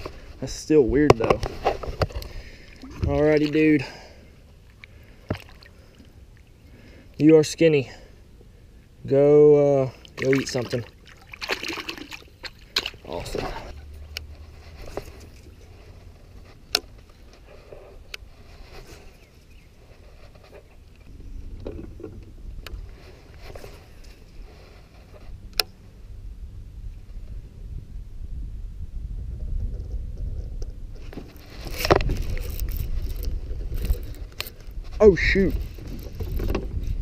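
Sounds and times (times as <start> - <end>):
wind noise: 0.0 - 6.0, 10.3 - 37.0.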